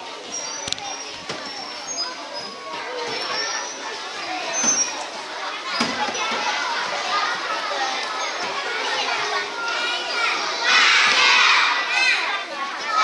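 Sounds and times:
young children chattering: 0:00.0 - 0:13.0.

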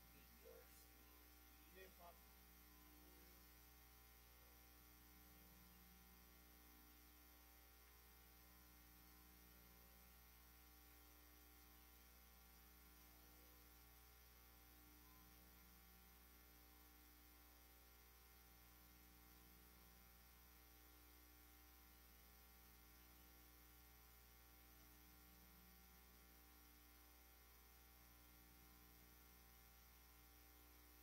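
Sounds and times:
faint electrical hum: 0:00.0 - 0:31.0.

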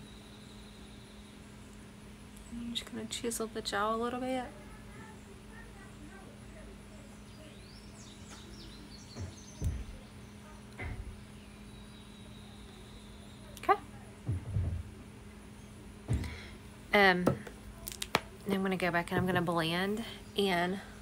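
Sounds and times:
steady low hum: 0:00.0 - 0:21.0
faint high chirps: 0:07.0 - 0:13.8
dull low thumps: 0:09.0 - 0:10.2, 0:14.2 - 0:15.4, 0:16.0 - 0:16.6.

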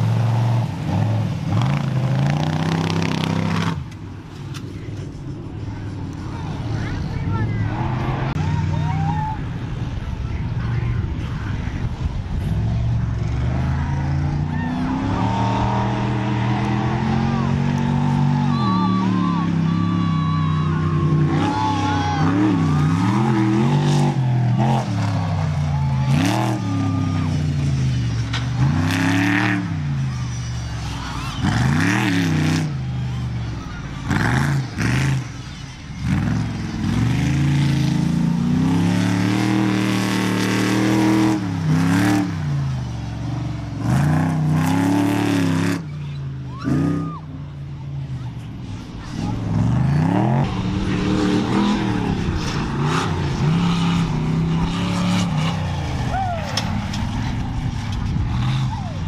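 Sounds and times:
truck engines revving hard: 0:00.0 - 0:59.0.

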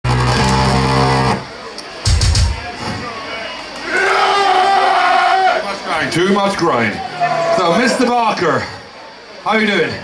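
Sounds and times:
distorted electric guitar and bass chord: 0:00.0 - 0:01.5
hall noise: 0:00.0 - 0:05.1.

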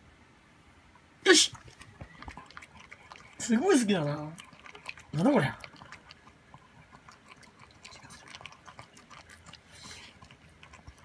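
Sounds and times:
dog eating from ceramic bowl: 0:01.5 - 0:11.0.

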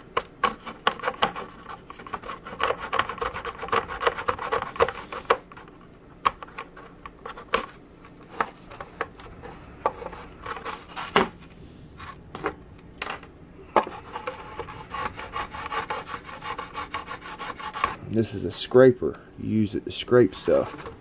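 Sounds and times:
hand plane shaving wood: 0:00.8 - 0:05.2, 0:13.8 - 0:18.0.

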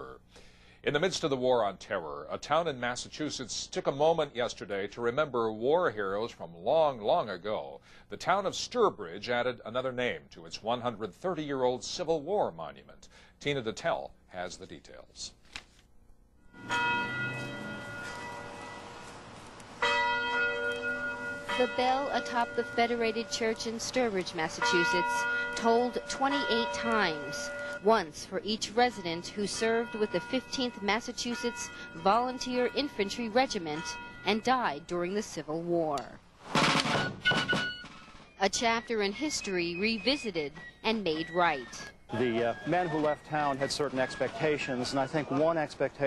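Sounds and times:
church bell tolling: 0:16.6 - 0:34.8.

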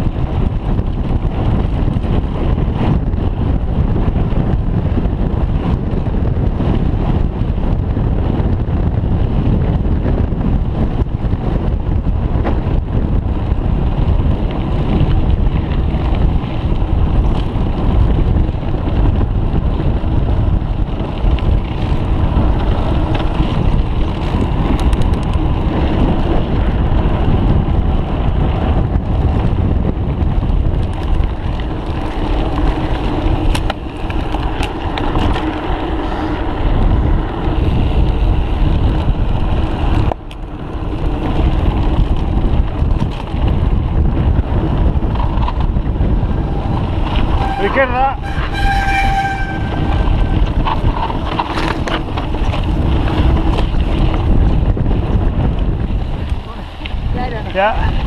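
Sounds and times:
bike knocking and rattling: 0:00.0 - 0:58.0
wind buffeting microphone: 0:00.0 - 0:58.0.

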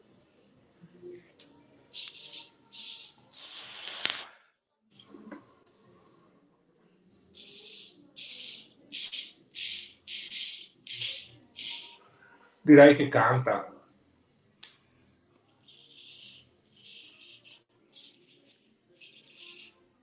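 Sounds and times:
razor rasping through stubble: 0:15.6 - 0:19.8.

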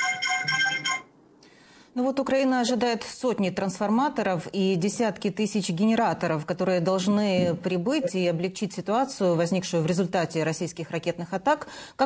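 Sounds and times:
phone ringtone tune: 0:00.0 - 0:01.1.

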